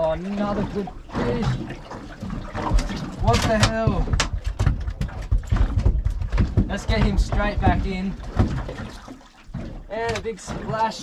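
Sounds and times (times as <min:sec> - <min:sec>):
fish flapping on boat floor: 0:00.5 - 0:11.0.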